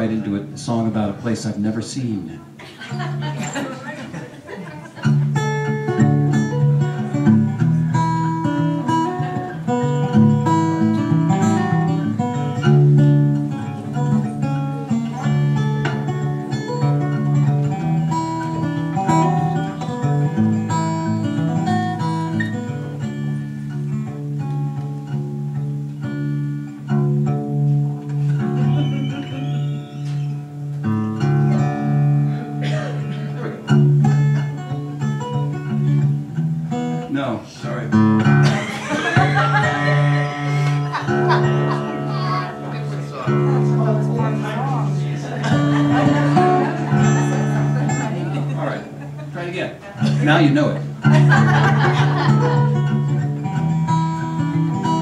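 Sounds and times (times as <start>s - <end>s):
solo acoustic guitar: 0.0s - 55.0s.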